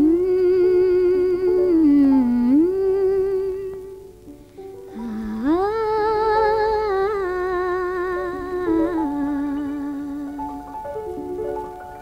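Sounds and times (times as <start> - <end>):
woman humming a melody: 0.0 - 4.0, 4.9 - 10.8
soft sustained accompaniment: 0.0 - 12.0.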